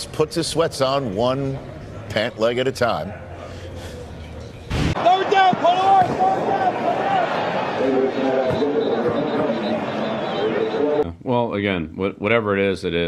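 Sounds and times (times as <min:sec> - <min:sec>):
background crowd hiss: 0:00.0 - 0:11.0
indistinct voices talking: 0:05.0 - 0:11.0.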